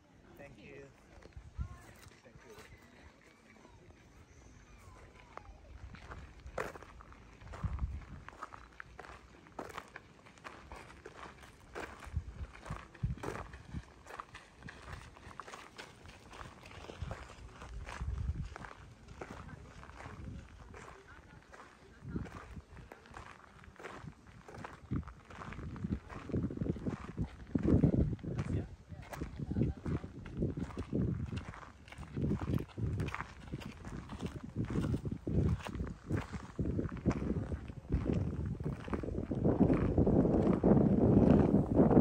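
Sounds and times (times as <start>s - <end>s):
footsteps on gravel: 0.6s - 42.0s.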